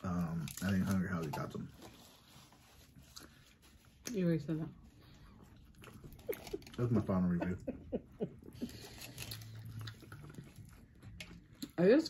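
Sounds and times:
chewing pizza crust: 0:00.0 - 0:04.2, 0:04.8 - 0:07.6, 0:08.3 - 0:11.9.

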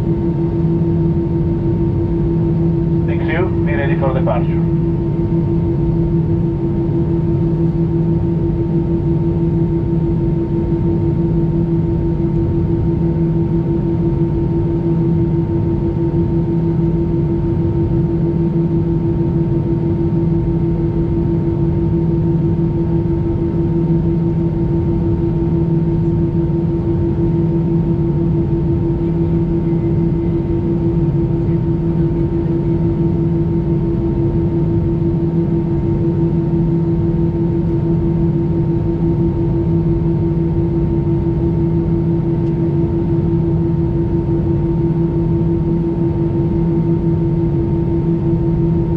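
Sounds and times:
aircraft cabin hum: 0:00.1 - 0:07.5, 0:22.8 - 0:48.9.

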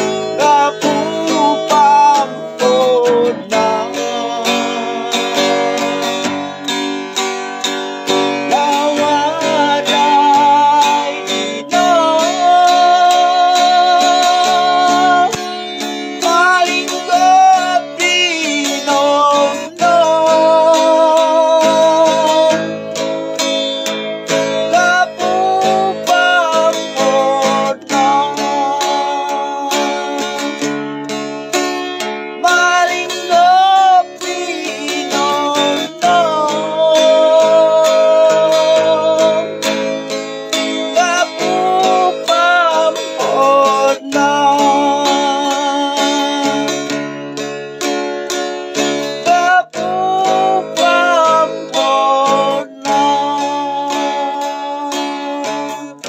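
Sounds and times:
man singing: 0:00.0 - 0:47.5, 0:48.7 - 0:56.0
acoustic guitar strumming: 0:00.0 - 0:56.0.

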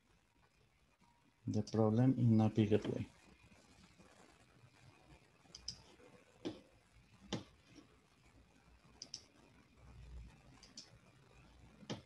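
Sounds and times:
computer mouse clicks: 0:05.5 - 0:05.8, 0:09.0 - 0:09.3, 0:10.6 - 0:10.9.

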